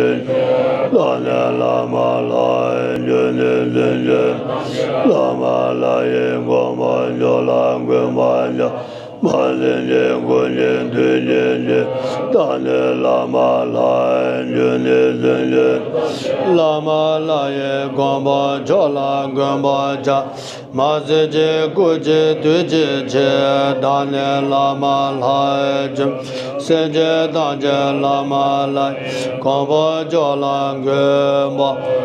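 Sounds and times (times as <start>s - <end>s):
monks chanting in unison: 0.0s - 32.0s.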